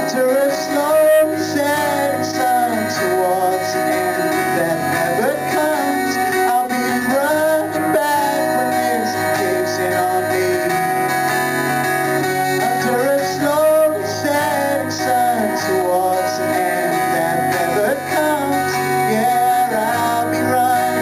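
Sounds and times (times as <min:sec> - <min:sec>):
man singing: 0:00.0 - 0:11.4, 0:12.2 - 0:21.0
acoustic guitar strumming: 0:00.0 - 0:21.0.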